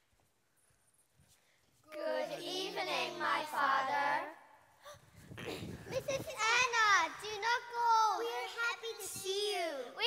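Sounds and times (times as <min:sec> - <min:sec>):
children speaking together: 0:04.9 - 0:10.0.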